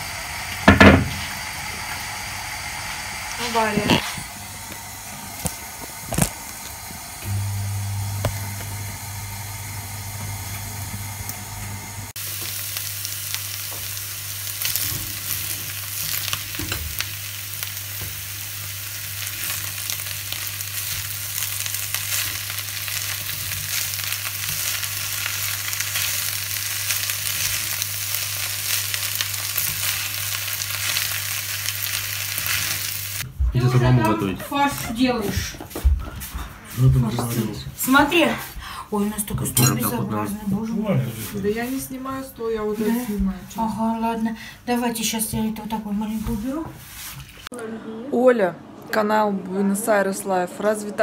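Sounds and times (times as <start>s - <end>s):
food sizzling in a frying pan: 0.0s - 35.4s
steady low hum: 1.4s - 12.2s.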